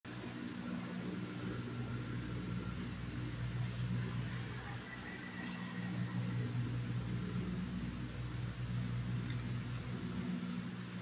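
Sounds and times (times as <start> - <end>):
low electrical hum: 0.1 - 11.0
high-pitched whine: 1.2 - 10.8.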